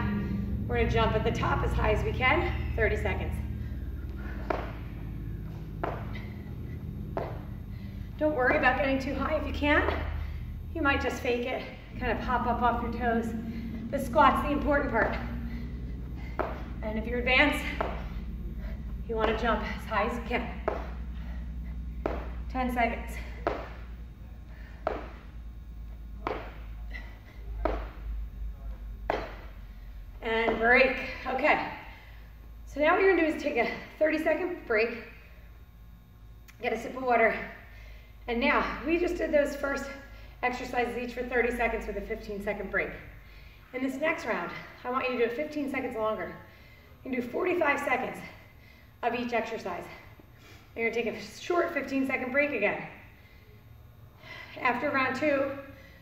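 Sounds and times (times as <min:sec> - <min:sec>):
feet thudding on rubber floor: 0:02.4 - 0:11.1, 0:12.2 - 0:25.4, 0:26.1 - 0:28.1, 0:29.0 - 0:29.6
feet landing on rubber mat: 0:04.2 - 0:04.9, 0:05.5 - 0:06.4, 0:07.0 - 0:07.6, 0:20.6 - 0:21.4, 0:22.0 - 0:24.0, 0:24.6 - 0:25.3, 0:26.2 - 0:28.0, 0:29.0 - 0:29.5.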